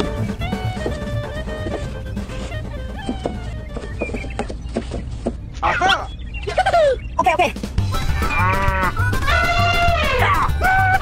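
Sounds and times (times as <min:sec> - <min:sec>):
background music with low beat: 0:00.0 - 0:04.9, 0:07.3 - 0:11.0
cow mooing: 0:08.2 - 0:09.0.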